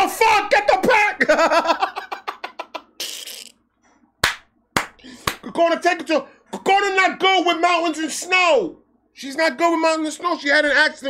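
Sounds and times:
man laughing hard: 1.2s - 2.9s.

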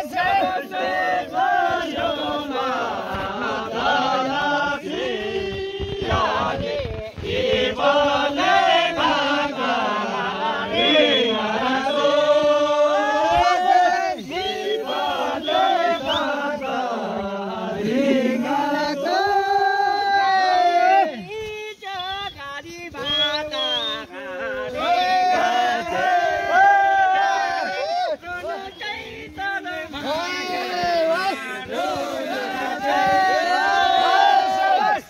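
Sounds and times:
men singing in chorus: 0.0s - 35.0s.

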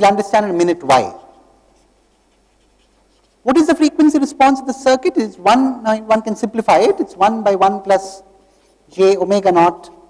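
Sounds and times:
man speaking: 0.0s - 1.4s, 3.4s - 8.3s, 8.9s - 10.0s
marker scratching on paper: 0.6s - 3.6s.

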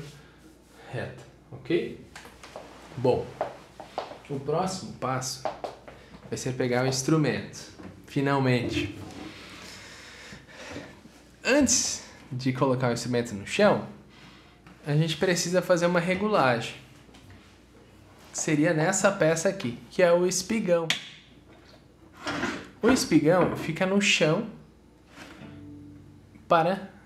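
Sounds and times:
cello endpin sliding scrape: 22.1s - 22.8s.

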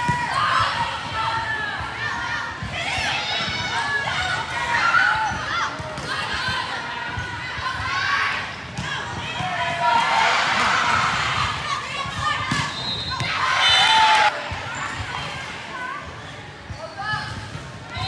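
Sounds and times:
people shouting in gym: 0.0s - 16.2s
crowd cheering: 9.5s - 14.7s.

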